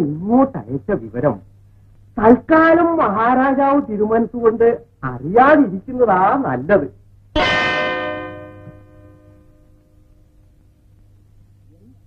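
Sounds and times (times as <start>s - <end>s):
bell ringing: 7.4s - 9.5s.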